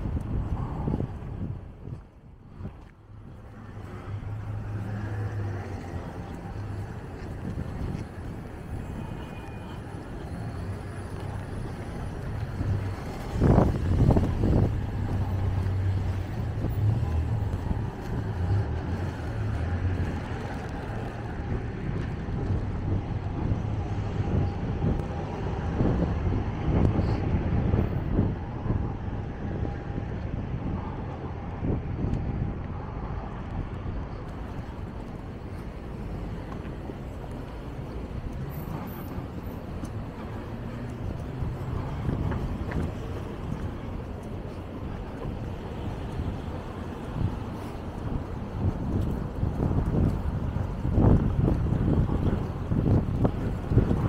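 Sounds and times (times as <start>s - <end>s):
cars driving past: 0.0s - 54.0s.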